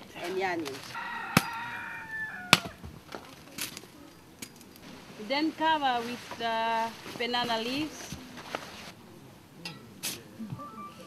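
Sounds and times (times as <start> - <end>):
rooster crowing: 0.9 - 2.9
machete chopping knocks: 2.5 - 3.0.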